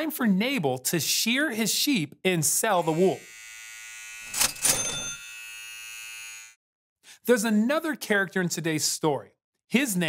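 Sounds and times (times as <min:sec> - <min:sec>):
electric clippers buzzing: 0:02.7 - 0:06.6.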